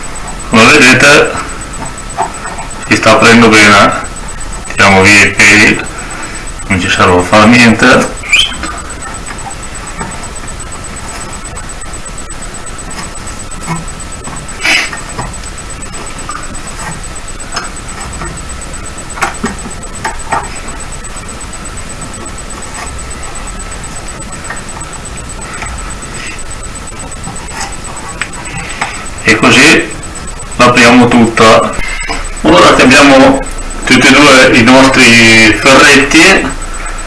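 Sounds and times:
background hum: 0:00.0 - 0:37.0
thin high whine: 0:00.0 - 0:37.0.

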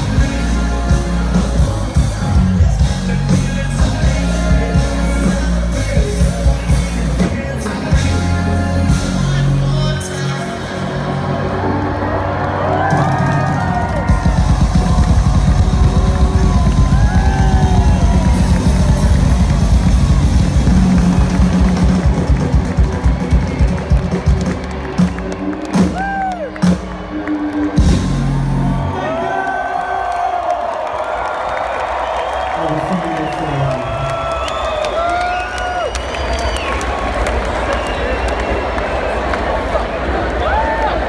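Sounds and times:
live dance music over pa: 0:00.0 - 0:30.0.

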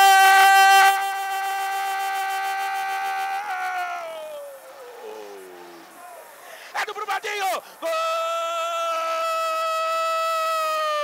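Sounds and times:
commentator shouting goal call: 0:06.7 - 0:09.6.

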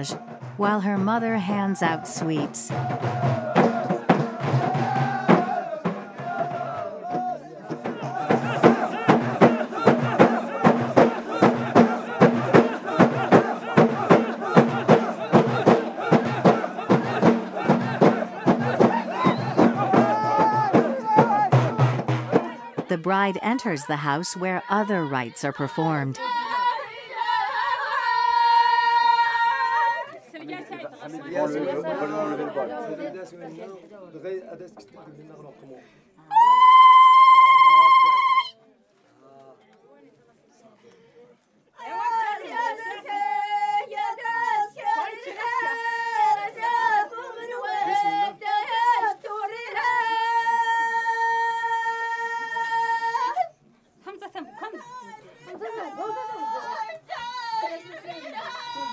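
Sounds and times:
high-pitched voice holding a note: 0:00.0 - 0:02.7, 0:22.9 - 0:26.2
people chattering: 0:00.0 - 0:02.7, 0:22.9 - 0:26.2
group singing together: 0:00.0 - 0:21.8, 0:22.4 - 0:29.8, 0:41.8 - 0:53.4
frame drums beating: 0:07.8 - 0:23.1.

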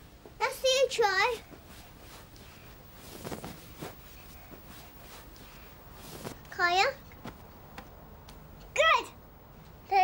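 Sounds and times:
sleeping bag rustling: 0:01.6 - 0:06.6.

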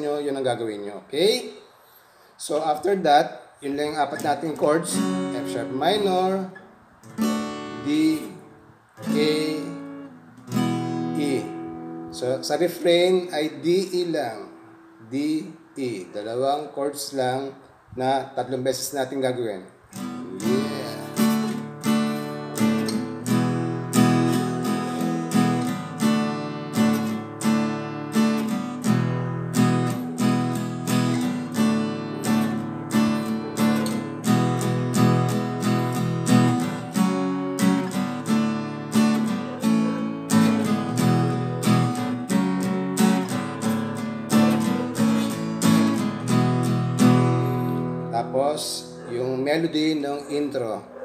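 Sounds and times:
acoustic guitar strumming chords: 0:03.9 - 0:16.2, 0:19.9 - 0:49.9.

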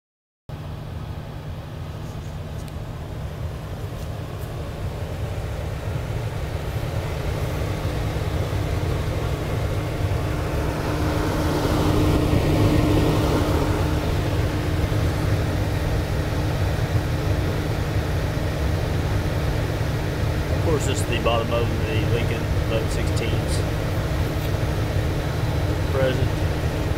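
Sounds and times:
oven blowers humming: 0:00.5 - 0:26.9.

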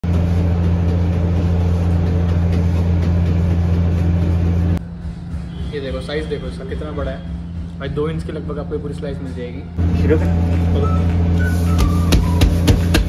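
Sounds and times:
low kitchen machine hum: 0:00.0 - 0:13.0.

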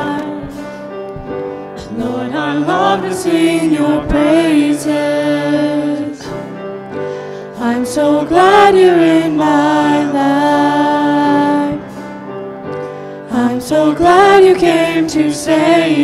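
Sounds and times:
group singing a praise song: 0:00.0 - 0:00.7, 0:01.8 - 0:06.6, 0:07.5 - 0:12.0, 0:13.3 - 0:16.0
grand piano: 0:00.0 - 0:16.0.

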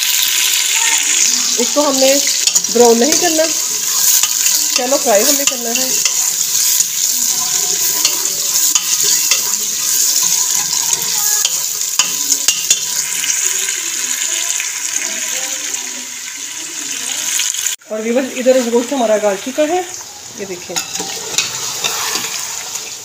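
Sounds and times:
onions sizzling in a pot: 0:00.0 - 0:23.0
spoon scraping against pot: 0:00.9 - 0:13.1, 0:20.7 - 0:22.9.

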